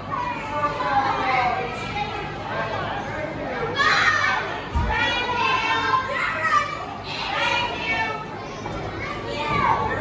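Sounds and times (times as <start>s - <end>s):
children shouting: 3.7s - 10.0s.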